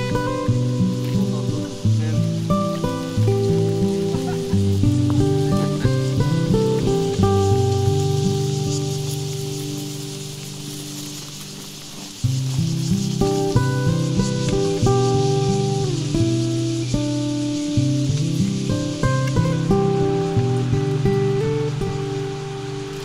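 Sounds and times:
plucked acoustic guitar: 0:00.0 - 0:23.0.

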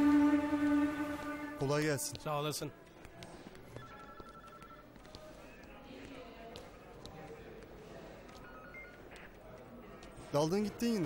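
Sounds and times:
indistinct background voices: 0:04.6 - 0:11.0.

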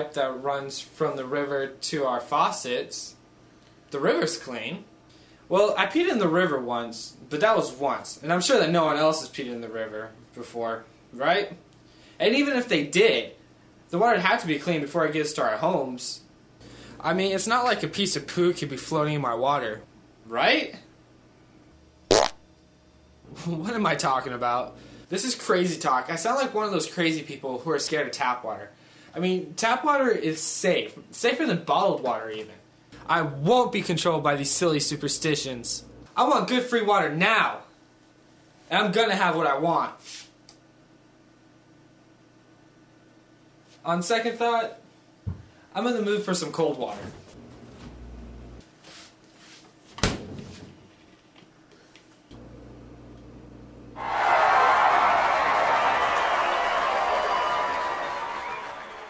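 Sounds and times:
refrigerator door thudding shut: 0:50.0 - 0:50.5.

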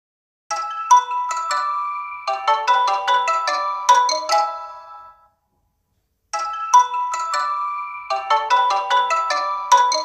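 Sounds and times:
bell-like ringtone melody: 0:00.5 - 0:05.4, 0:06.3 - 0:10.0.

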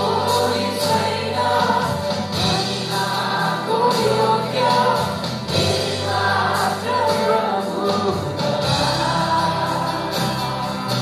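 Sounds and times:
keyboard and guitar accompaniment: 0:00.0 - 0:11.0
several voices singing together: 0:00.0 - 0:11.0.

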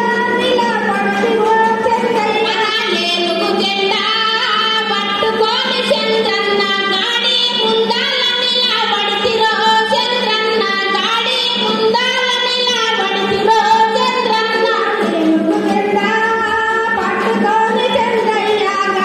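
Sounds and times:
woman singing over pa system: 0:00.0 - 0:19.0.

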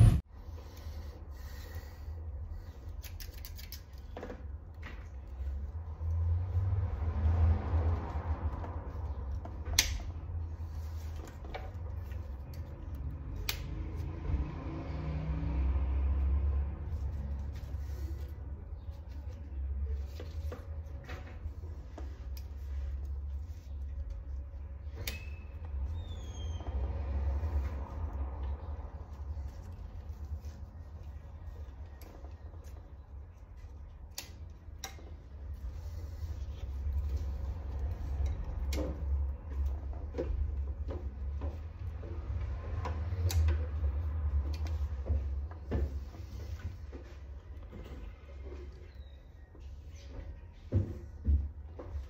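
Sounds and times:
steady low hum: 0:00.0 - 0:03.2.

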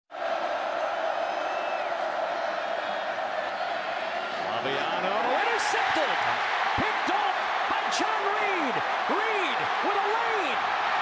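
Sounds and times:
stadium crowd cheering: 0:00.1 - 0:11.0.

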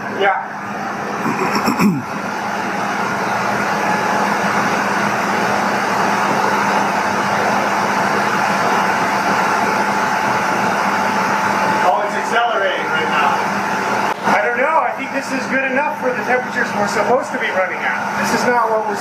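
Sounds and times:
steam turbine rushing and whining: 0:00.0 - 0:19.0.

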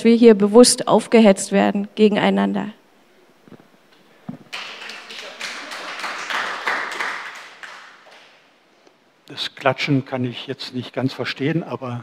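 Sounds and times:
audience clapping: 0:04.3 - 0:08.5.

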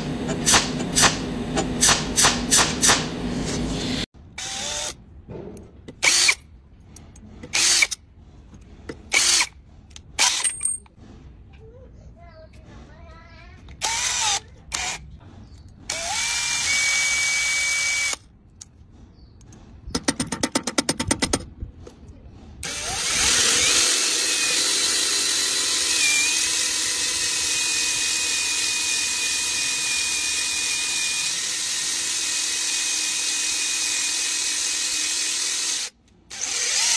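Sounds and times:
power drill driving screw into metal: 0:06.0 - 0:06.5, 0:09.1 - 0:09.6, 0:10.2 - 0:10.8, 0:13.8 - 0:15.0.

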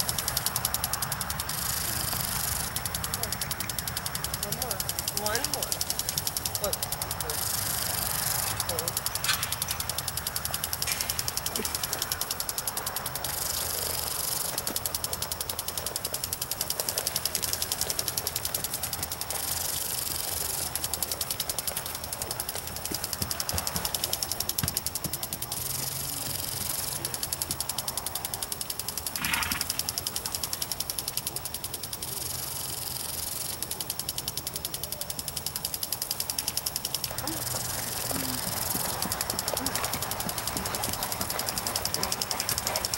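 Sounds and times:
lawn sprinkler hissing and ticking: 0:00.0 - 0:42.9.

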